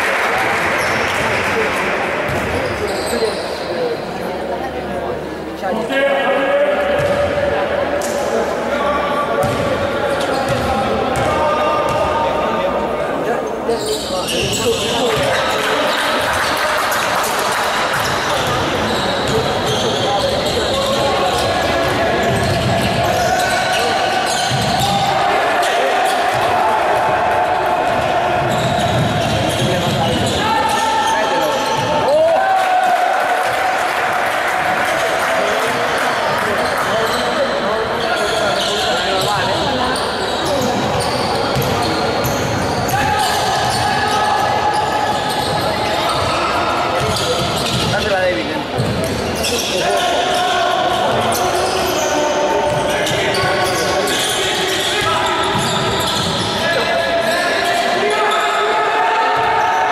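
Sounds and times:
indistinct voices in echoing hall: 0.0s - 59.9s
basketball bouncing on wooden court: 9.4s - 9.7s, 10.5s - 11.3s, 48.8s - 49.2s, 52.7s - 53.2s.

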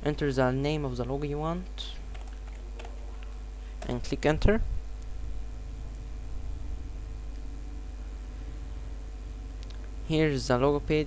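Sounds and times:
computer keyboard keystrokes: 2.1s - 3.9s.

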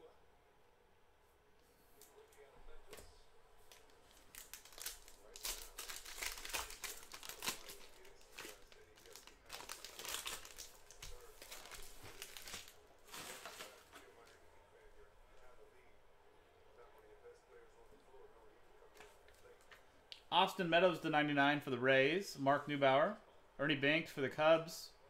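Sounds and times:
foil wrapper crinkling and tearing: 3.7s - 14.2s.

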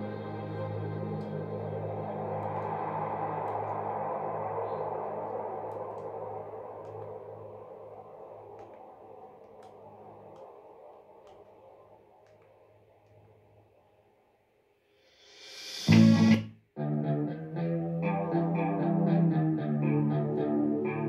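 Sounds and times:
faint clicks: 4.6s - 13.4s.

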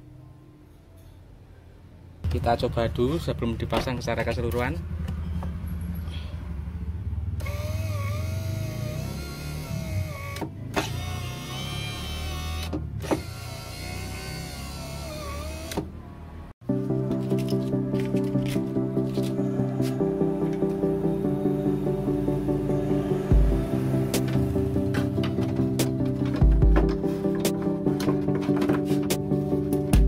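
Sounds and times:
power window motor whining: 7.4s - 16.0s, 22.8s - 25.8s
background music: 16.6s - 30.0s.

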